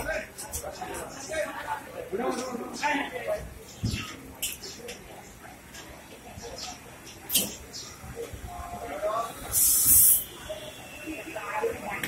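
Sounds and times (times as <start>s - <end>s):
faint voices: 0.0s - 12.0s
air brakes hissing: 9.5s - 10.3s.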